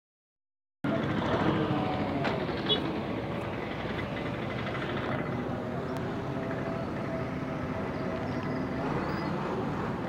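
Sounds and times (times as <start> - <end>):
traffic: 0.8 - 10.0
distant voices: 0.9 - 10.0.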